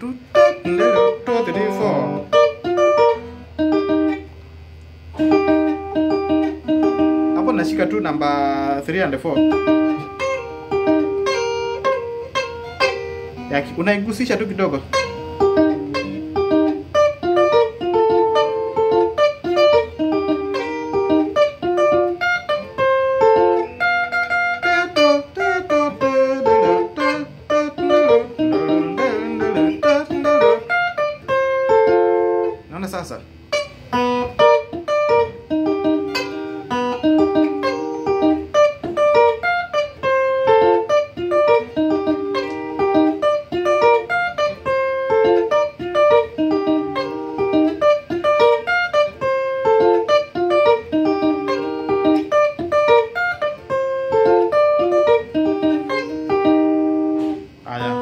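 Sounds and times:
electric guitar picked notes: 0.0 - 58.0.

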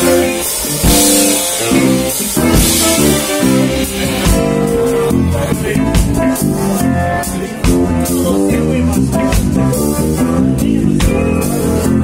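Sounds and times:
bass guitar: 0.0 - 12.0
drum kit: 0.0 - 12.0
electric guitar: 0.0 - 12.0.

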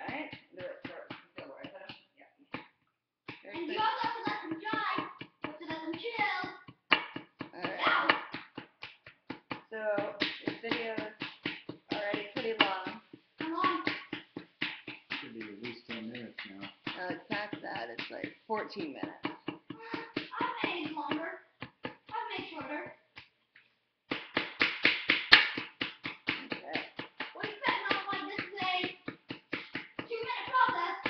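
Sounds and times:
voices: 0.0 - 1.9, 3.4 - 6.5, 7.6 - 8.2, 9.7 - 11.2, 11.9 - 14.0, 15.2 - 21.4, 22.1 - 23.0, 26.4 - 29.0, 30.1 - 31.0
hammer and chisel tapping plaster: 0.0 - 31.0.

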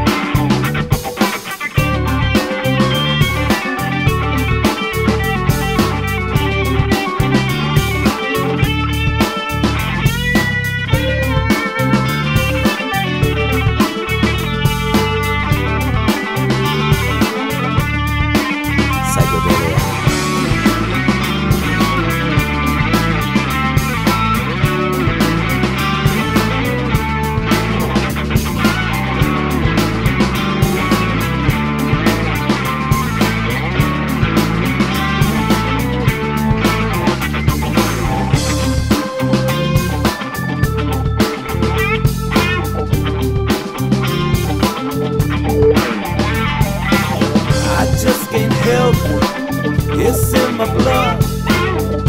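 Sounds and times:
bass guitar: 0.0 - 52.0
lead electric guitar: 0.0 - 52.0
steady drum beat: 19.0 - 20.8, 46.4 - 51.6.

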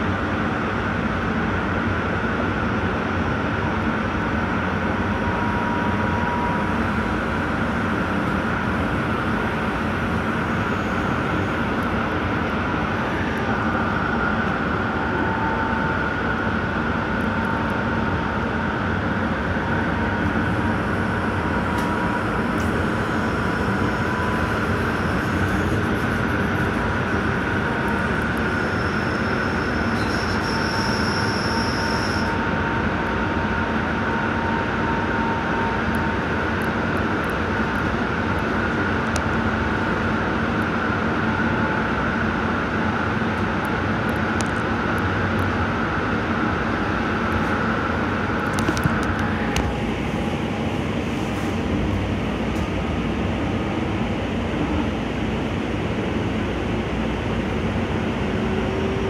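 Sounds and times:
train wheels rumbling on rail: 0.0 - 59.0
thin high whine: 4.8 - 17.9, 19.5 - 36.3
high wheel squeal: 21.5 - 32.6.

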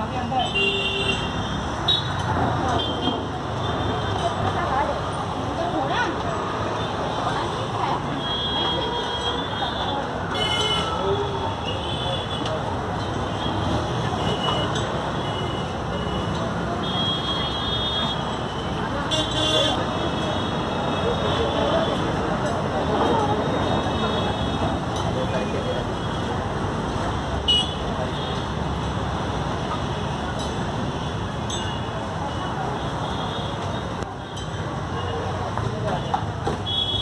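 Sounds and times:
background chatter: 0.0 - 37.0
steady traffic noise: 0.0 - 37.0
people talking: 2.2 - 15.2, 15.8 - 36.6.

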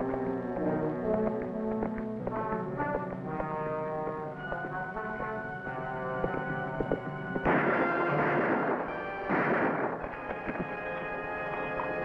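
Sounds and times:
dramatic orchestral music with brass: 0.0 - 12.0.

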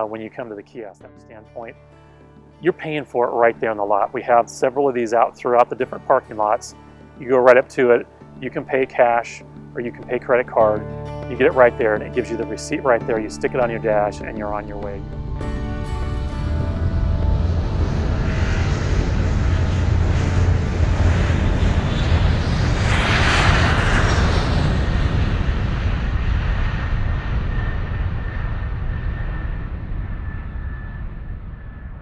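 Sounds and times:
airplane flying past: 0.0 - 32.0
faint high engine whine: 0.0 - 32.0.

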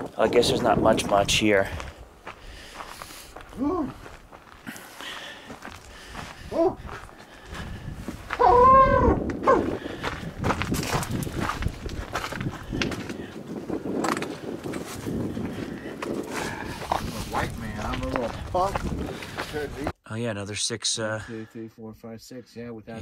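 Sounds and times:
footsteps on dry brush: 1.6 - 8.6, 9.2 - 13.6, 14.8 - 19.8.

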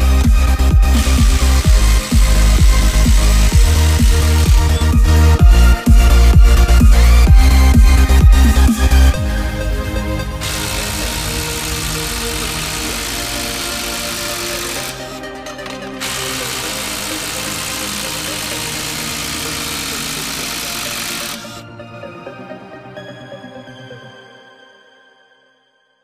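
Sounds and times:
electronic music: 0.0 - 21.6
impact driver hammering: 0.9 - 4.9, 10.4 - 21.6.

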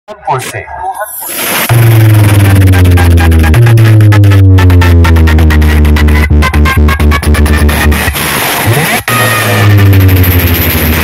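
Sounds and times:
loud electronic dance music: 1.1 - 11.0
fast ticking beats: 1.6 - 11.0
heavy held bass note: 1.7 - 11.0.

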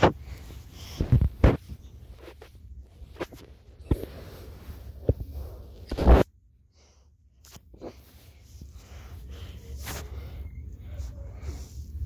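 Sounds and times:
blankets rustling: 0.0 - 12.0.

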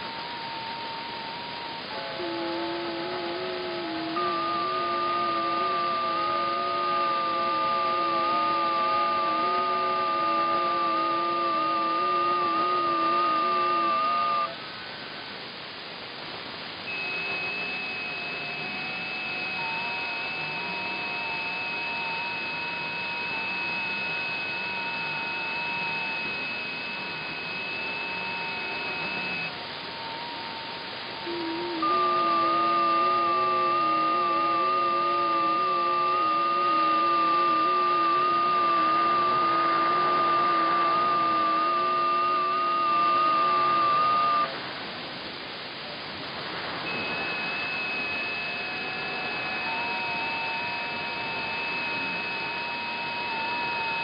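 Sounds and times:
radio band noise hiss: 0.0 - 54.0
steady digital radio tones: 16.8 - 54.0.

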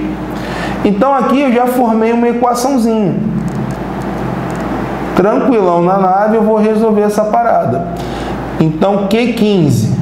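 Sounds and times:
faint low background hum: 0.0 - 10.0.

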